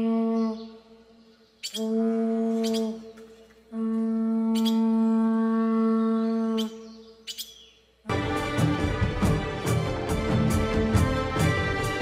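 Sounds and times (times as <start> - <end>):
conch shell trumpet note: 1.8 - 3.0, 3.7 - 6.6
loud music: 8.1 - 12.0.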